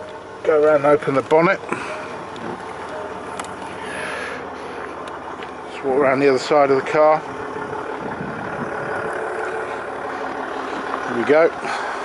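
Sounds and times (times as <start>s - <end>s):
diesel engine idling: 0.0s - 12.0s.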